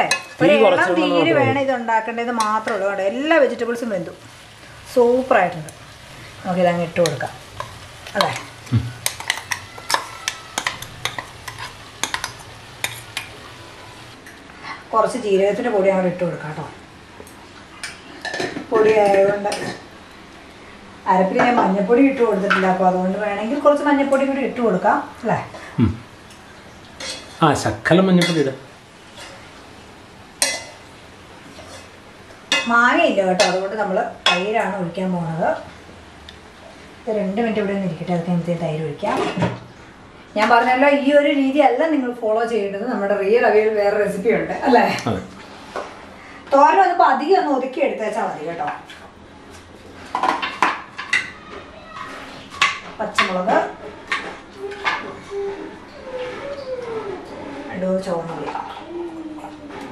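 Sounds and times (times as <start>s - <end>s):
spoon stirring vegetables in pot: 6.9s - 14.0s.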